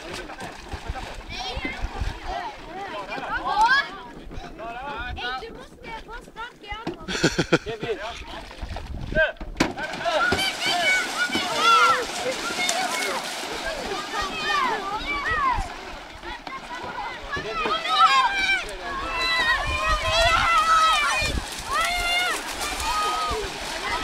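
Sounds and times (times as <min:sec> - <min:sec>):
water splashing: 0:00.0 - 0:04.3, 0:07.0 - 0:24.0
children shouting and cheering: 0:10.0 - 0:24.0.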